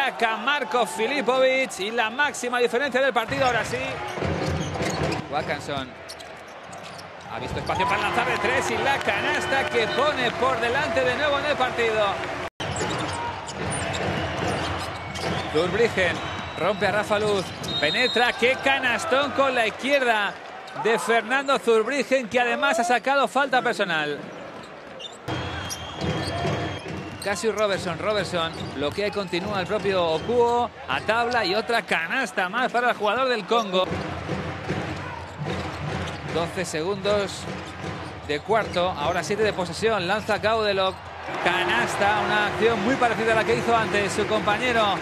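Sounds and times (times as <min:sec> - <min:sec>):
arena crowd hubbub: 0:00.0 - 0:45.0
shoe squeaks on court: 0:04.0 - 0:07.8, 0:12.6 - 0:15.6, 0:24.3 - 0:27.7
music playing: 0:41.3 - 0:45.0.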